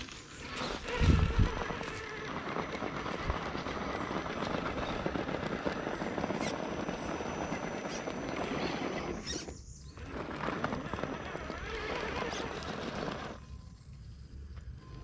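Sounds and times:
tires crunching over dirt and stones: 0:00.0 - 0:15.0.

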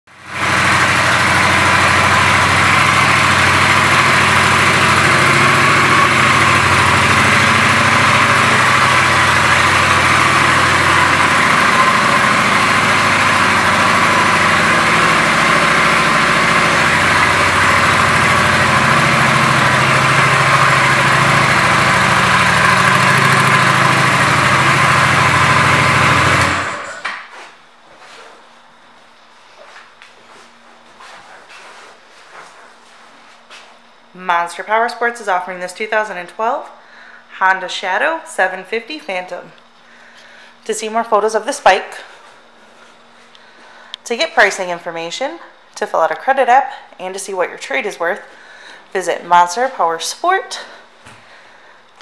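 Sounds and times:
motorcycle engine idling: 0:00.1 - 0:27.0.

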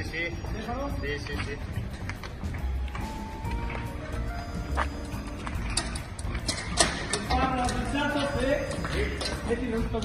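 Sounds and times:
background music with held notes: 0:00.0 - 0:10.0.

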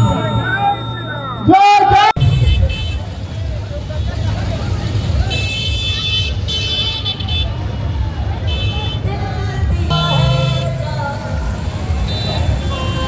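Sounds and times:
street traffic rumble: 0:00.0 - 0:13.0
vehicle horns honking: 0:02.2 - 0:03.4, 0:05.3 - 0:07.8, 0:08.4 - 0:09.1, 0:09.9 - 0:13.0.

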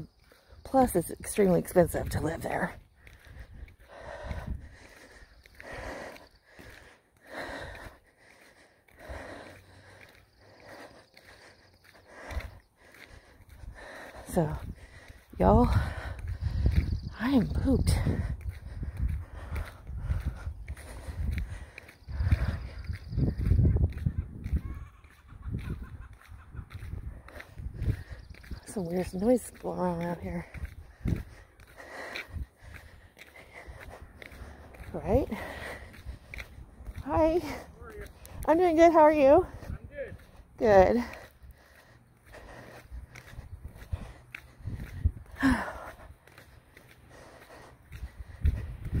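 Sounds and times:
low wind rumble: 0:00.0 - 0:29.6, 0:30.2 - 0:49.0
faint footsteps: 0:00.0 - 0:49.0
woman breathing hard: 0:02.9 - 0:17.1, 0:17.9 - 0:28.6, 0:30.5 - 0:38.4, 0:39.5 - 0:49.0
wind on microphone: 0:14.4 - 0:28.7, 0:30.3 - 0:31.4, 0:43.2 - 0:46.1, 0:47.9 - 0:49.0.

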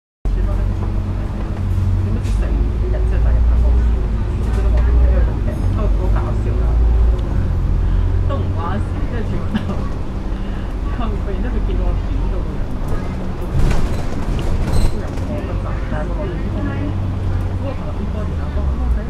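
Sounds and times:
bus engine rumble: 0:00.3 - 0:19.0
passengers talking: 0:00.3 - 0:19.0.

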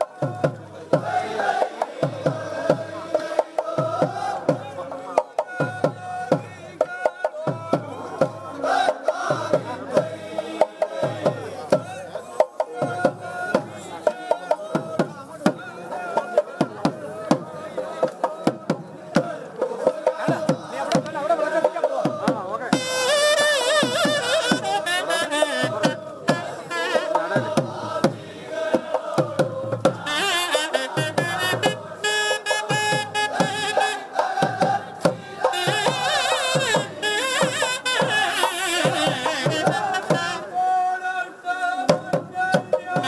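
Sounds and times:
men chanting in chorus: 0:00.0 - 0:22.8, 0:23.8 - 0:43.0
deep drum beats: 0:00.0 - 0:40.4, 0:41.9 - 0:43.0
crowd hubbub: 0:00.0 - 0:43.0.

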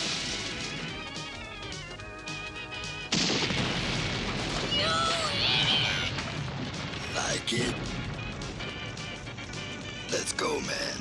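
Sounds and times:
music: 0:00.0 - 0:05.5, 0:06.2 - 0:11.0.

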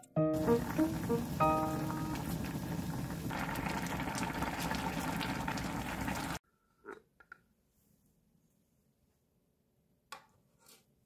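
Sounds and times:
stew bubbling at a boil: 0:00.4 - 0:06.4.

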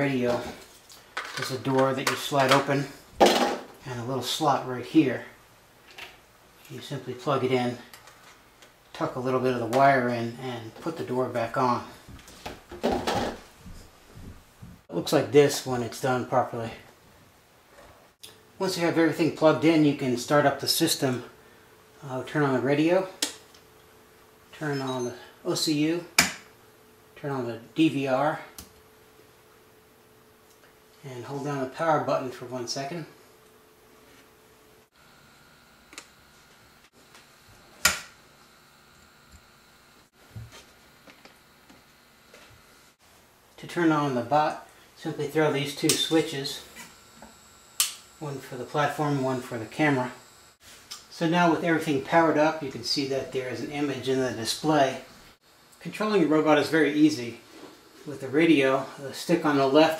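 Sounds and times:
low room hiss: 0:00.0 - 0:59.9.

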